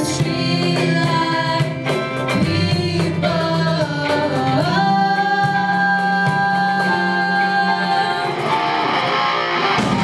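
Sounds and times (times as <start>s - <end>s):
woman singing: 0.0s - 8.8s
electric guitar: 0.0s - 10.0s
keyboard: 0.0s - 10.0s.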